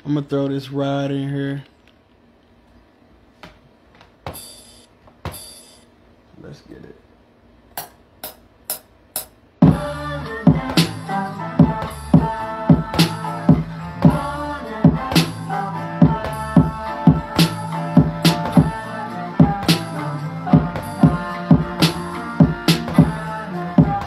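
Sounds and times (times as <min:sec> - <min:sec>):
hip-hop beat: 0:07.8 - 0:24.0.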